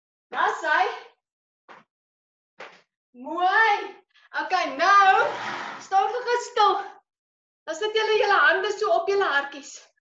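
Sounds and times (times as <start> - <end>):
woman speaking: 0.3 - 1.1, 3.2 - 7.0, 7.7 - 9.9.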